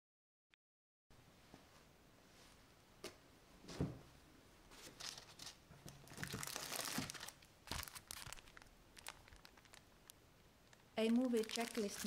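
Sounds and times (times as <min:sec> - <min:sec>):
plastic wrapping crinkling: 0:04.8 - 0:12.0.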